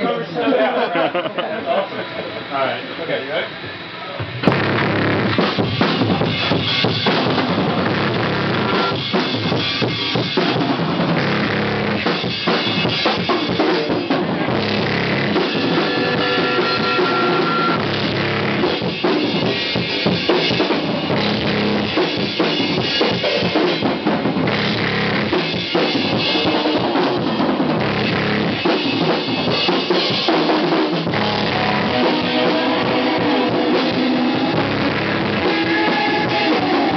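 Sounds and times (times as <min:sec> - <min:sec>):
hardcore band playing loud: 0:00.0 - 0:36.9
drums kick snare and cymbals: 0:03.5 - 0:36.9
short held tone: 0:08.4 - 0:09.1, 0:15.0 - 0:17.9.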